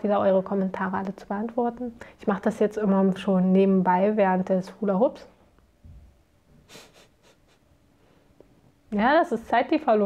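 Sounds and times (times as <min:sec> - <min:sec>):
woman speaking: 0:00.0 - 0:05.4, 0:08.9 - 0:10.0.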